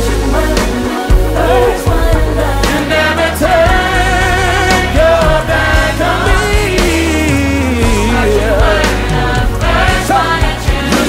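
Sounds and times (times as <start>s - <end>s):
band with piano bass and drums: 0.0s - 11.0s
choir singing: 0.0s - 11.0s
man singing gospel: 0.0s - 11.0s.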